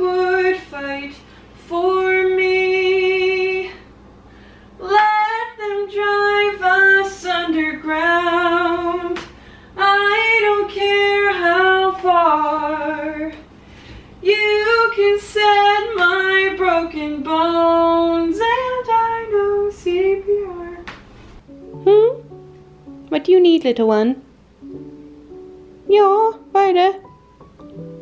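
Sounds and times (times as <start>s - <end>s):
woman singing unaccompanied: 0.0s - 3.9s, 4.8s - 13.5s, 14.2s - 20.9s.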